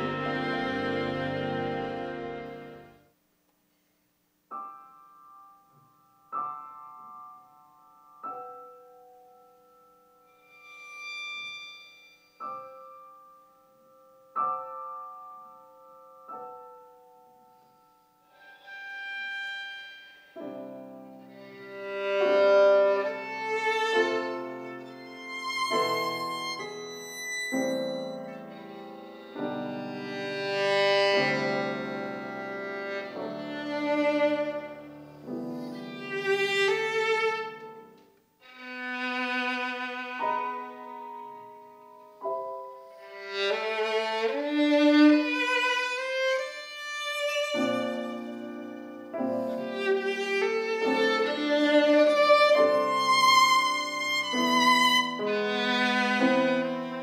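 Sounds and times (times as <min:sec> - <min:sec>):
piano chords: 0:00.0 - 0:03.0, 0:04.5 - 0:57.0
violin: 0:00.0 - 0:03.0, 0:10.2 - 0:13.1, 0:18.3 - 0:57.0.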